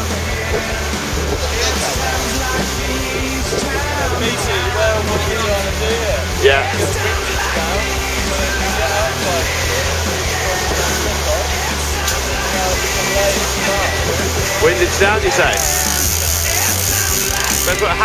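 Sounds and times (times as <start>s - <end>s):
background music: 0.0s - 18.0s
people talking: 0.0s - 18.0s.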